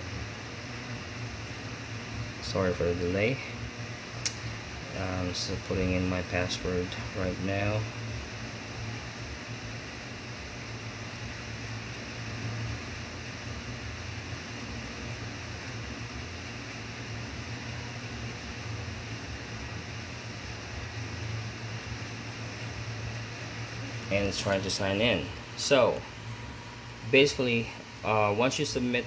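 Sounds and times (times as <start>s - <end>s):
room tone hiss: 0.0s - 29.0s
steady low hum: 0.0s - 29.0s.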